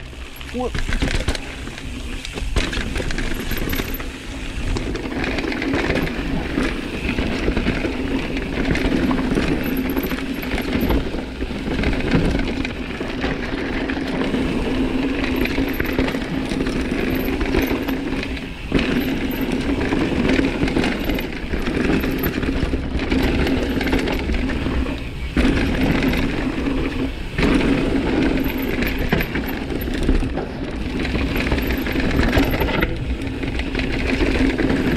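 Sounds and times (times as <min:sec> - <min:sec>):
bike rattle: 0:00.0 - 0:34.9
tyre roar on gravel: 0:00.0 - 0:34.9
bike freehub ratchet buzzing: 0:00.1 - 0:34.9.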